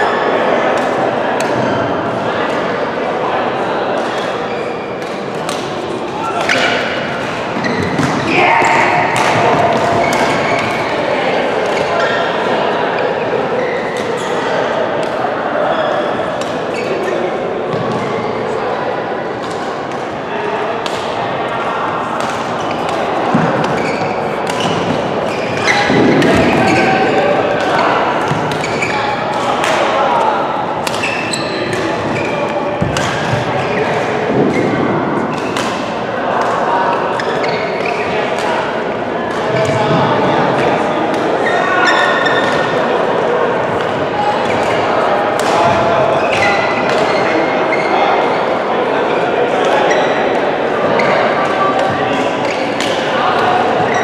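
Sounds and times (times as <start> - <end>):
chatter of many voices: 0.0 - 54.0
rackets hitting shuttlecock: 5.0 - 10.9, 20.8 - 21.2, 22.1 - 30.0, 30.7 - 36.6.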